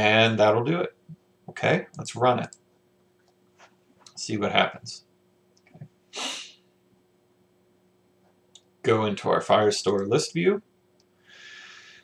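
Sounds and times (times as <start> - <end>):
sharp breath through nose: 6.1 - 6.6.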